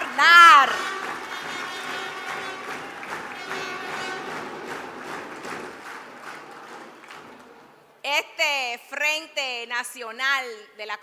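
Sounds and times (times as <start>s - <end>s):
indoor crowd applauding: 0.0s - 7.9s.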